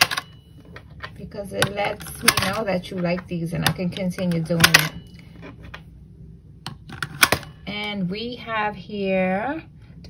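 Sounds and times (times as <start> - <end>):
coin slot clicks: 0.0 - 0.4, 1.6 - 2.8, 3.6 - 5.0.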